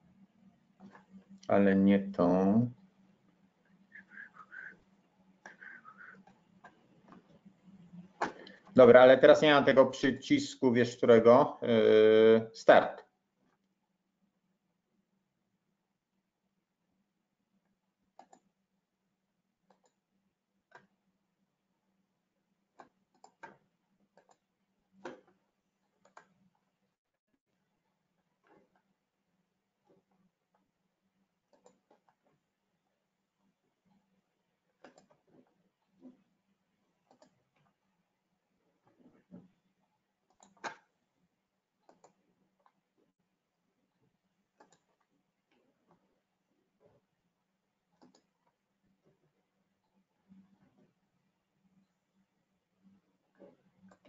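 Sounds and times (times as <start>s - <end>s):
faint computer mouse clicks: 19.7s - 20.0s, 41.8s - 42.8s, 44.6s - 45.1s, 48.0s - 48.3s.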